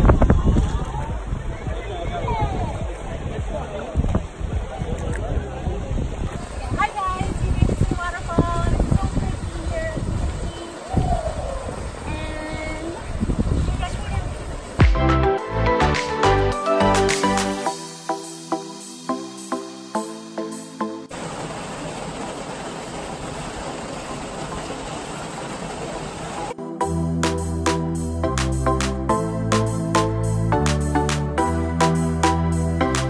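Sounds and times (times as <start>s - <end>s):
waterfall splashing into pool: 5.9s - 15.0s, 21.1s - 26.6s.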